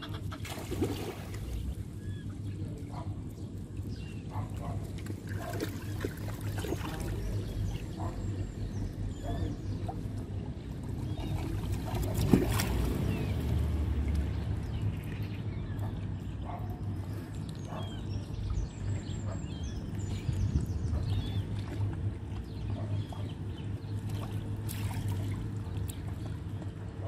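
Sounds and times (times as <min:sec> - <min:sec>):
steady low rumble: 0:00.0 - 0:27.0
water lapping against concrete: 0:00.0 - 0:27.0.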